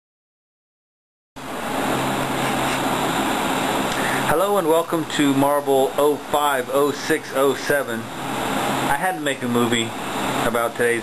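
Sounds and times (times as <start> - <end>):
glassworking torch hissing: 1.4 - 11.0.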